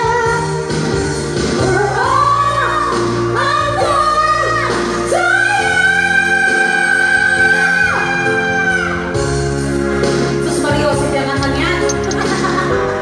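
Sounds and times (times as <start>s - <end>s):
instrumental backing: 0.0s - 13.0s
person singing pop live: 0.0s - 13.0s.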